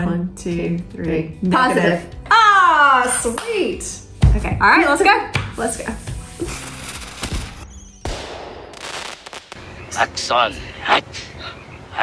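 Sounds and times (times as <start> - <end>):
fireworks cracking and bursting: 6.4 - 10.0.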